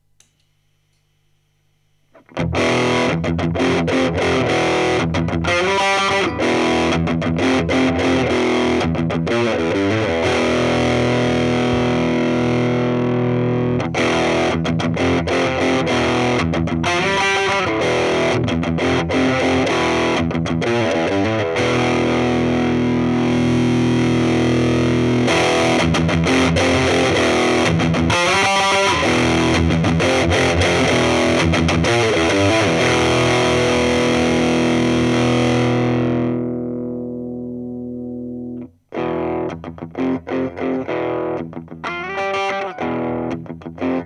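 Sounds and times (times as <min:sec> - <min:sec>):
distorted electric guitar: 0:02.1 - 0:44.0.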